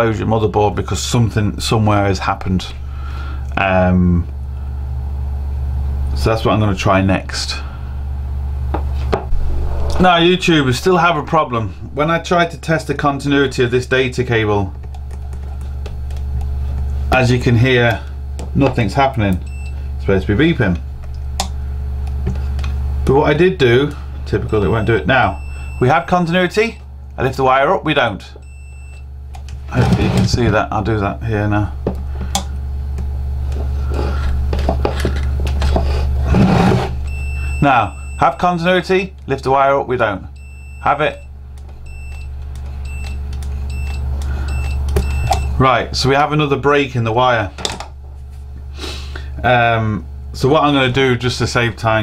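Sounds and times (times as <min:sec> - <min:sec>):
steady low hum: 0:00.0 - 0:52.0
multimeter probes clicking on pins: 0:41.5 - 0:45.6.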